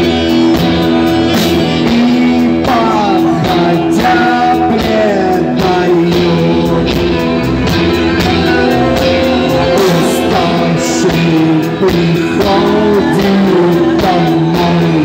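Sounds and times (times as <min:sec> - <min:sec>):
lead vocal: 0:00.0 - 0:15.0
live rock band playing: 0:00.0 - 0:15.0.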